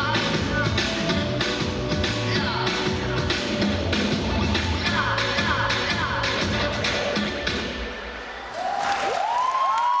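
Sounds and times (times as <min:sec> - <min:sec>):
audience applauding and cheering: 0:08.2 - 0:10.0.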